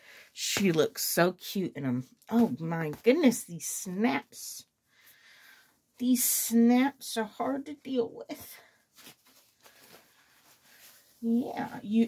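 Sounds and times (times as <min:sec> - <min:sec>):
soft fabric rustling: 0:01.9 - 0:12.0.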